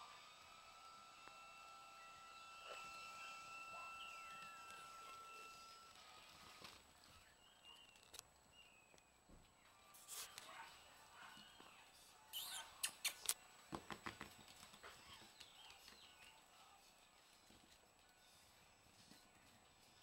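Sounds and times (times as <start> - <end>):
puppy claws tapping on wood floor: 13.7 - 15.9.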